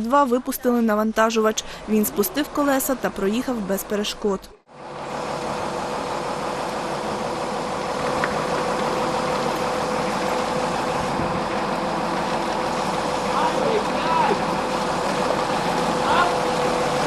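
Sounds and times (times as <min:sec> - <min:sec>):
diesel engine running: 0:00.0 - 0:17.0.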